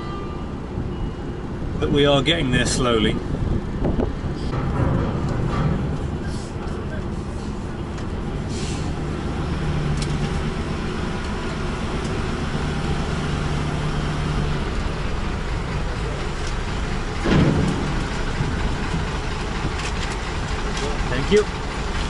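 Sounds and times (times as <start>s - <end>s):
diesel truck engine humming: 0.0s - 22.0s.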